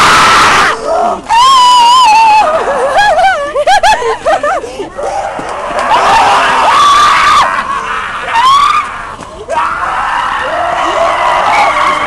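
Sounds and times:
people screaming and yelling: 0:00.0 - 0:12.0.

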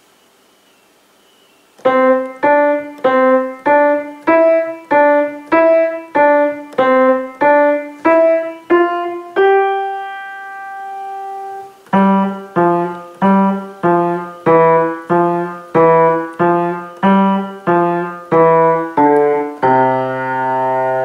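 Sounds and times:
grand piano playing: 0:01.8 - 0:21.0.

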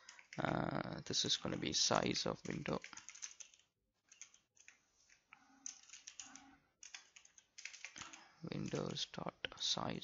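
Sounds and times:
keyboard typing: 0:00.0 - 0:09.1.

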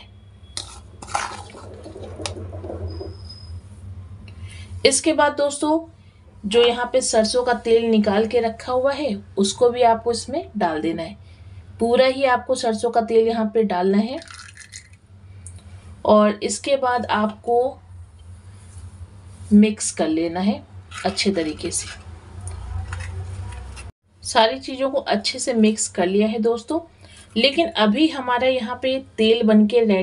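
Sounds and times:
spoon scraping a metal bowl: 0:00.5 - 0:03.6, 0:20.9 - 0:23.9
oil trickling into bowl: 0:14.2 - 0:15.0.

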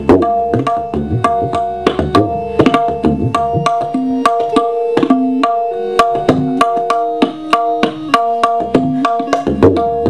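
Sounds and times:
tabla bass strokes: 0:00.0 - 0:10.0
tabla crisp high strokes: 0:00.0 - 0:10.0.

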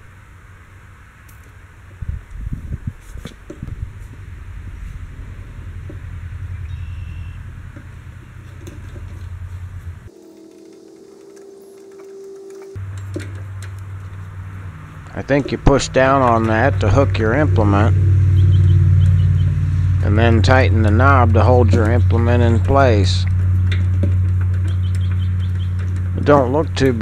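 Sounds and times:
steady low rumble: 0:00.0 - 0:27.0.

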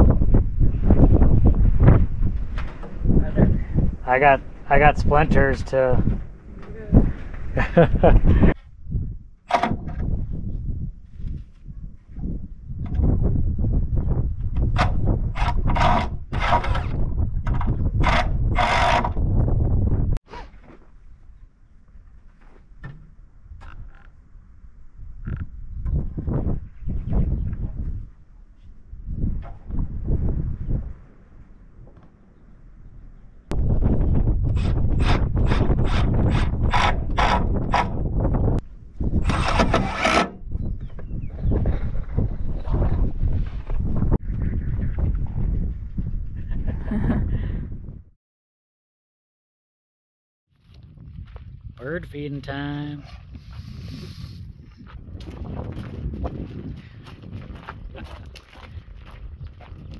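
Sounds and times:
power drill driving fasteners: 0:18.0 - 0:19.1, 0:39.2 - 0:40.3.

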